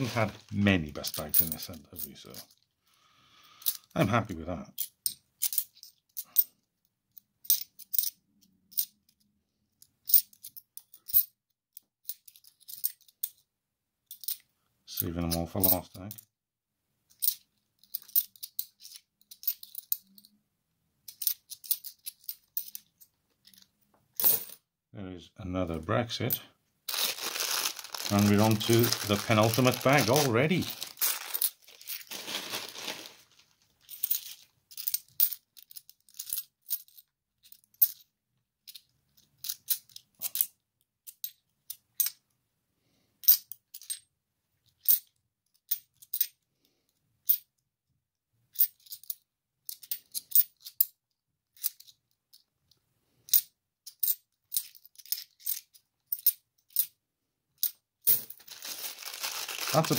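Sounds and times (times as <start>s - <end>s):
plastic bag crinkling: 0.0s - 0.8s, 26.9s - 34.4s, 58.2s - 59.9s
coins clinking: 24.2s - 24.6s, 26.9s - 33.2s, 33.8s - 37.0s, 57.6s - 59.9s.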